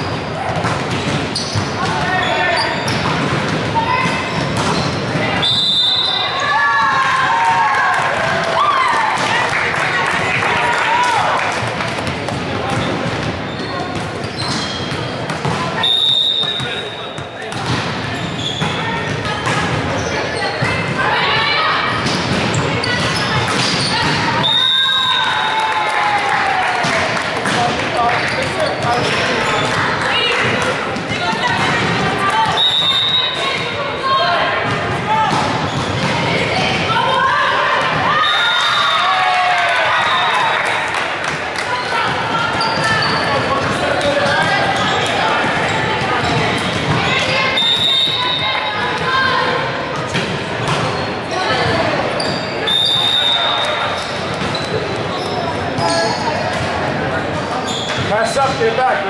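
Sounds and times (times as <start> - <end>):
volleyball being bounced and hit: 0.2 - 6.2, 6.8 - 9.5, 11.1 - 25.2, 26.8 - 33.8, 34.6 - 38.8, 41.3 - 52.4.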